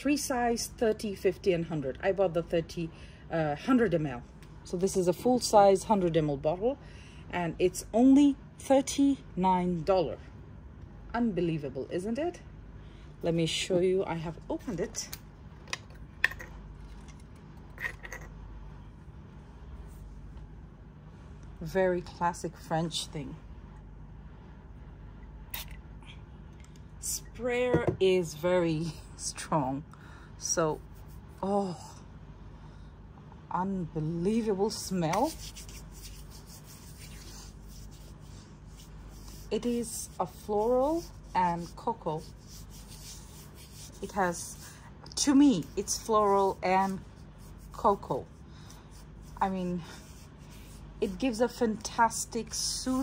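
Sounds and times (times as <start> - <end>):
hands rubbing oil on skin: 35.0 - 50.9.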